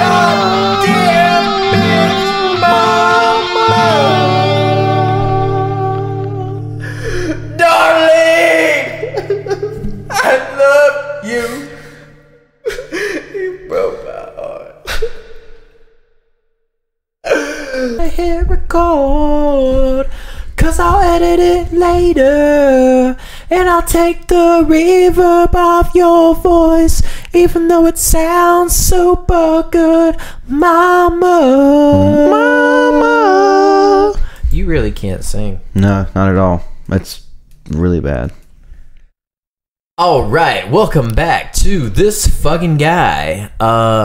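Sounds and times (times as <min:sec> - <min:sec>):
person singing: 0:00.0 - 0:12.1, 0:17.2 - 0:34.3
person singing held notes: 0:31.9 - 0:33.0.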